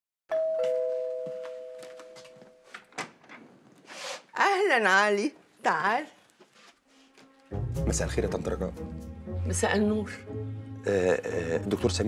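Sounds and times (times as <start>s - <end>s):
two-tone doorbell chime: 0.3s - 2.7s.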